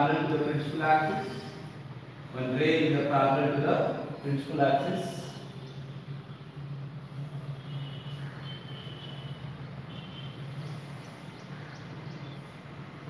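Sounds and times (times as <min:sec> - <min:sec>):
low room hum: 0:00.0 - 0:08.5.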